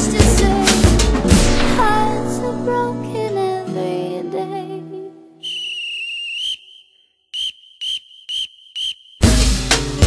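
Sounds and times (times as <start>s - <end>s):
music beat with drums and bass: 0.0s - 1.6s, 9.2s - 10.0s
whistle blasts: 5.4s - 9.4s.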